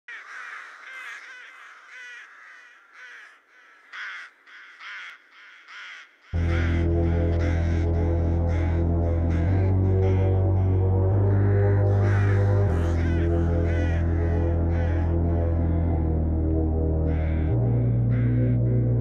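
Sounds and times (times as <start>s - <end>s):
crow caws: 0.1s - 16.3s, 17.0s - 19.0s
deep synth bass drone: 6.4s - 19.0s.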